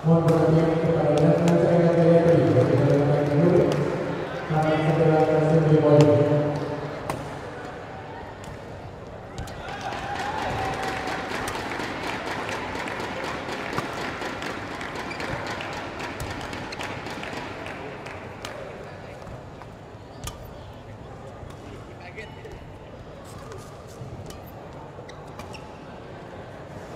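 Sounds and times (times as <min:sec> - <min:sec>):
murmur of crowd voices: 0:00.0 - 0:26.9.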